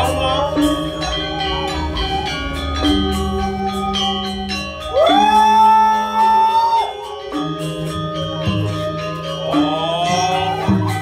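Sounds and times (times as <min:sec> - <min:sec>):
gamelan playing: 0:00.0 - 0:11.0.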